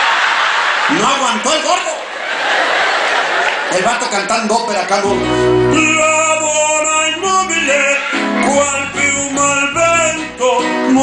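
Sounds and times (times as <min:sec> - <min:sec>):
man singing mock-operatic notes: 0:05.1 - 0:11.0.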